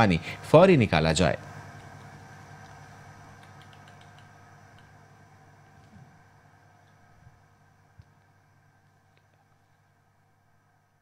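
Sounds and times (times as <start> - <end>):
faint low hum: 0.0 - 11.0
light ticks: 3.4 - 4.9.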